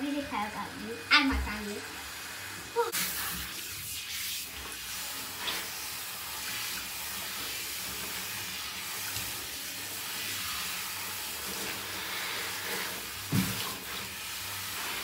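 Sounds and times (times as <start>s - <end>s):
shower water spraying onto hair: 0.0s - 15.0s.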